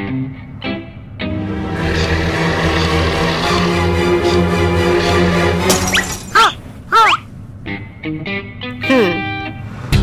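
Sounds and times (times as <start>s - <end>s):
cartoon background music: 1.2s - 7.2s
glass shattering sound effect: 5.6s - 6.4s.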